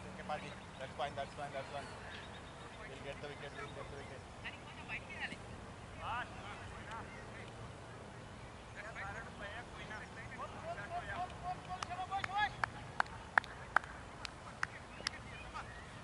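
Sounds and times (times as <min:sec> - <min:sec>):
players calling out: 0:00.3 - 0:16.0.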